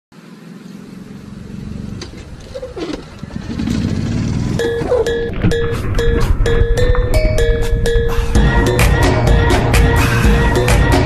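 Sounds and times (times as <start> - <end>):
golf cart motor running: 0.2 - 5.2.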